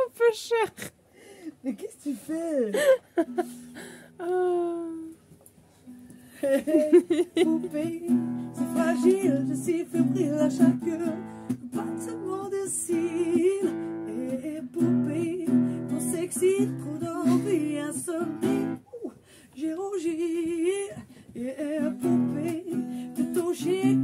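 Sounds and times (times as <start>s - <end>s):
person singing: 4.2s - 5.2s, 6.3s - 24.0s
acoustic guitar strumming: 7.4s - 18.8s, 21.6s - 24.0s.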